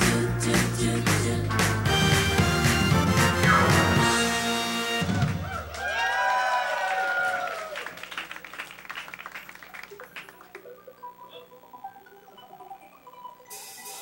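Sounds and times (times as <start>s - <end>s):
audience clapping: 0.6s - 4.0s, 5.0s - 10.8s
audience cheering and shouting: 5.0s - 7.9s.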